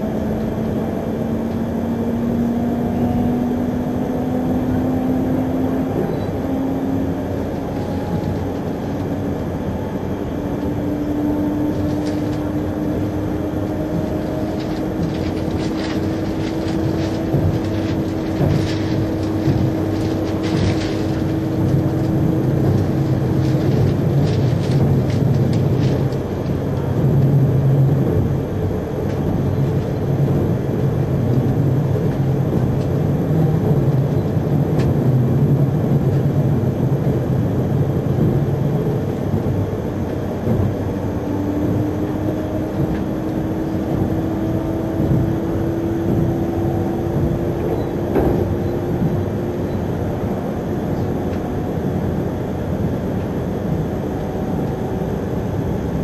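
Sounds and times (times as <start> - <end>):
train rumble: 0.0 - 56.0.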